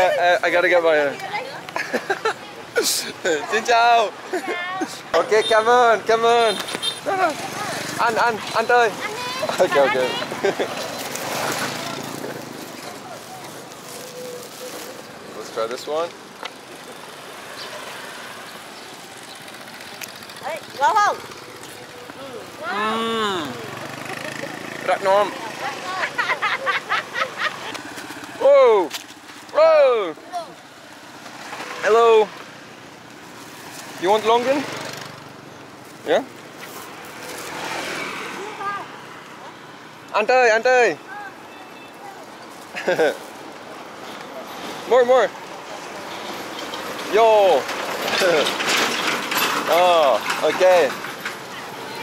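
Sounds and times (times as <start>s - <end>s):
motorbikes: 0.0s - 52.0s
road vehicle passing: 0.0s - 52.0s
traffic: 0.0s - 52.0s.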